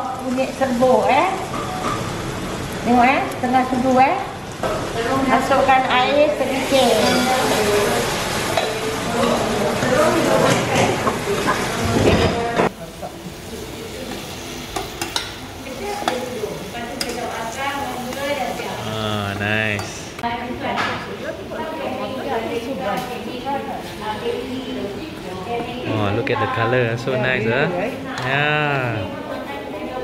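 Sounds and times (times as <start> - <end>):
water sizzling in hot oil: 0.0 - 18.8.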